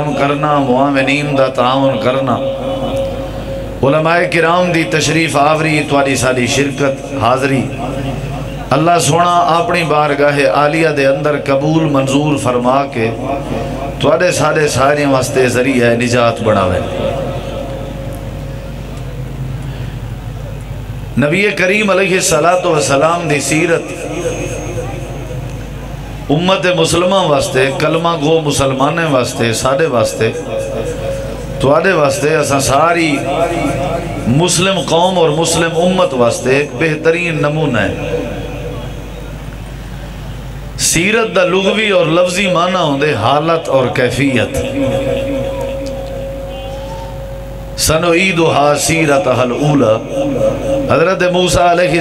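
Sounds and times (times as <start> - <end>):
man speaking amplified: 0.0 - 18.3, 21.1 - 52.0
public address hum and hiss: 0.0 - 52.0.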